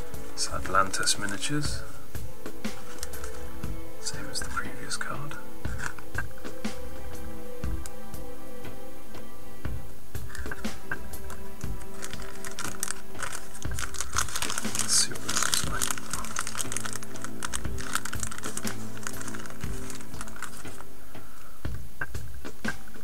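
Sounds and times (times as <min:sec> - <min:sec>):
background music: 0:00.0 - 0:23.0
plastic bags crinkling: 0:02.8 - 0:03.4, 0:11.2 - 0:20.9.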